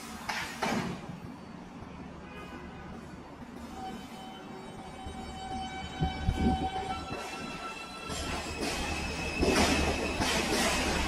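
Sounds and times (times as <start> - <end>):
train wheels rumbling: 3.4 - 11.0.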